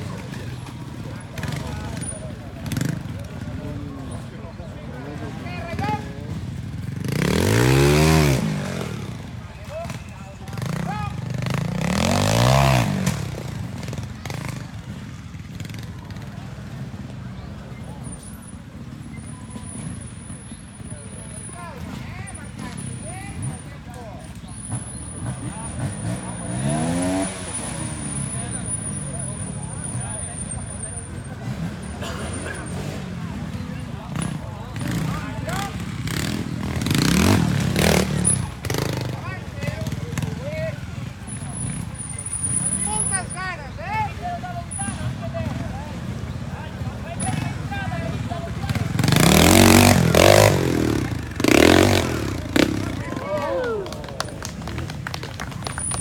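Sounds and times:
motorcycle engines revving: 0:00.0 - 0:56.0.

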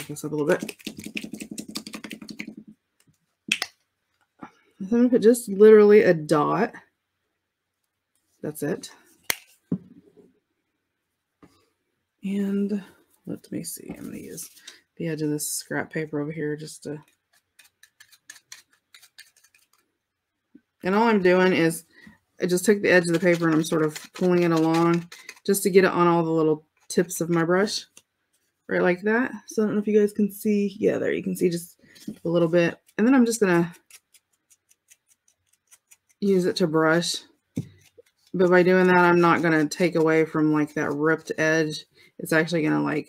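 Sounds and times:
plastic bottle rattling: 0:00.0 - 0:02.8
bristles ticking off paper: 0:00.5 - 0:02.7.

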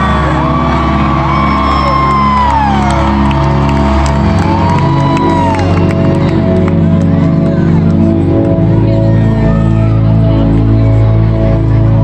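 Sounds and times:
crowd whooping and cheering: 0:00.0 - 0:07.0
live pop music: 0:00.0 - 0:12.0.

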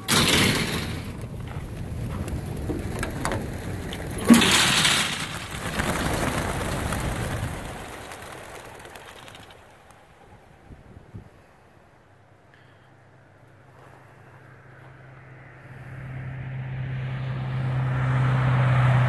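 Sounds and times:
loud bang from trailer: 0:00.0 - 0:01.3
pigeon wingbeats clattering: 0:00.0 - 0:10.7.

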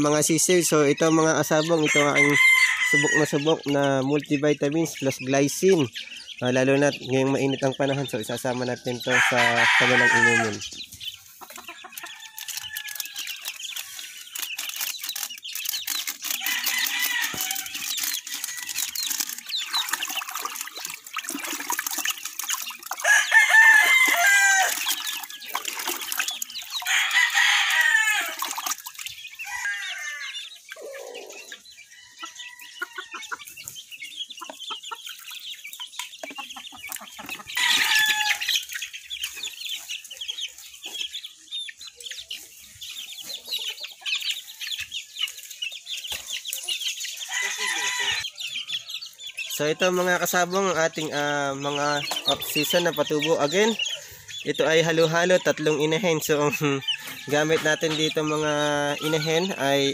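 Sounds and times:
chickens clucking and chirping: 0:00.0 - 0:59.9
roosters crowing: 0:01.3 - 0:04.0, 0:08.5 - 0:10.7, 0:11.5 - 0:20.7, 0:22.8 - 0:33.7, 0:37.0 - 0:38.8, 0:47.1 - 0:49.0, 0:49.6 - 0:59.9.

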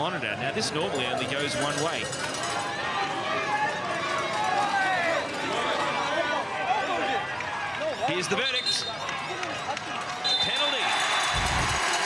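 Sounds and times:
crowd shouting and chattering: 0:00.0 - 0:12.0.

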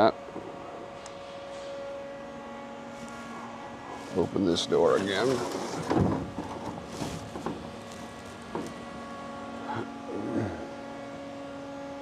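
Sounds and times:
machining center humming: 0:00.0 - 0:12.0
thin whining tones: 0:00.0 - 0:12.0
low tone: 0:07.6 - 0:12.0.

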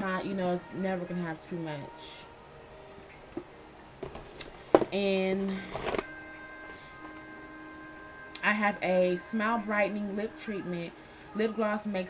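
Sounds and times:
faint steady humming tones: 0:00.0 - 0:12.0.

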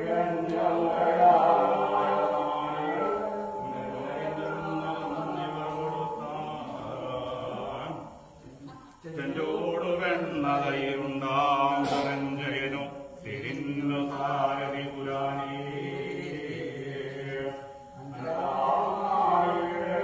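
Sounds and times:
group chanting devotional song: 0:00.0 - 0:20.0.

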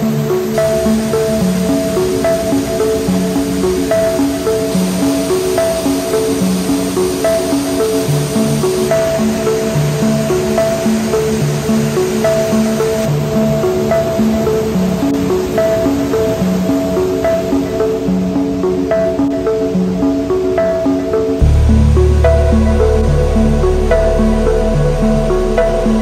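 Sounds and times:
melody of short even notes: 0:15.5 - 0:26.0.

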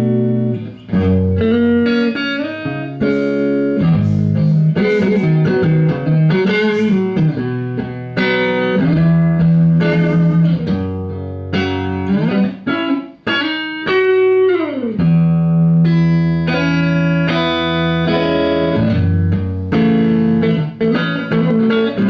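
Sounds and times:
electric guitar through amplifier: 0:00.0 - 0:22.0.

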